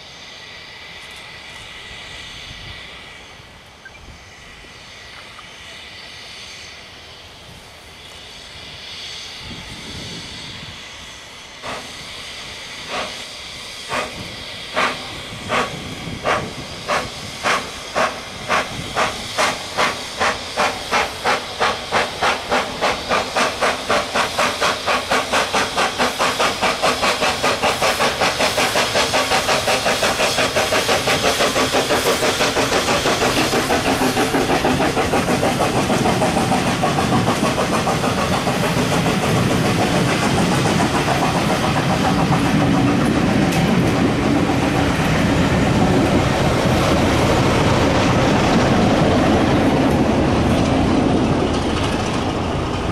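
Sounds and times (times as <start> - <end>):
diesel locomotive passing: 0.0 - 52.9
steam locomotive chuffing: 0.0 - 52.9.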